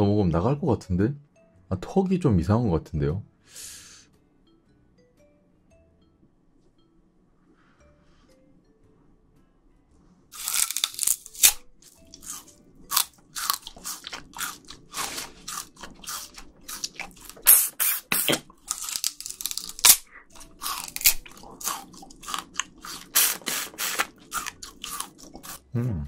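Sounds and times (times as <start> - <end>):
sugar cane crunching in teeth: 10.3 - 25.7.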